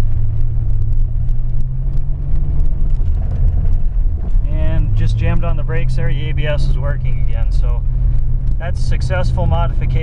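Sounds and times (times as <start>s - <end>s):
low engine hum: 0.0s - 10.0s
road rumble: 0.0s - 10.0s.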